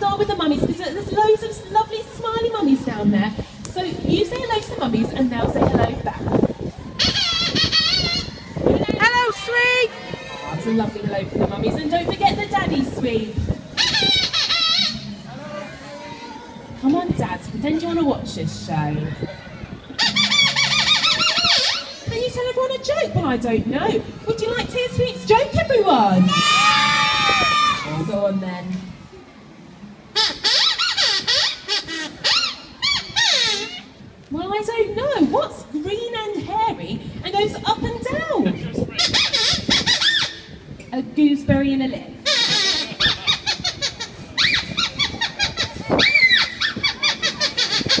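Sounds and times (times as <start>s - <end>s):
high squeaker squeaks: 13.8s - 15.2s, 20.0s - 22.1s, 30.2s - 33.9s, 42.2s - 48.0s.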